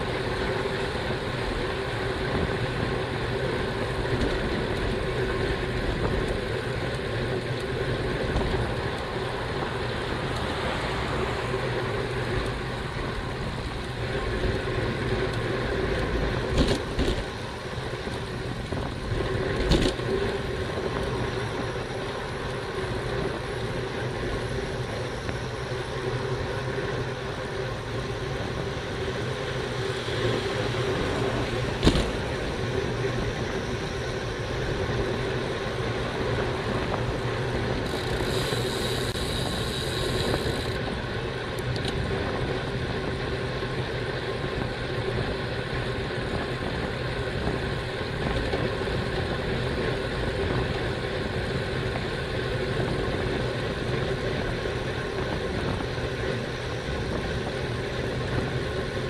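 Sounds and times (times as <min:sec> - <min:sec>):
wind and road rush: 0:00.0 - 0:59.0.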